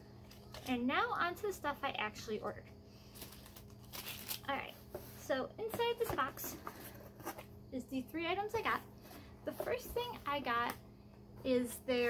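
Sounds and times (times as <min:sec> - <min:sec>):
cardboard and paper rustling: 0:03.1 - 0:07.5, 0:08.5 - 0:10.7.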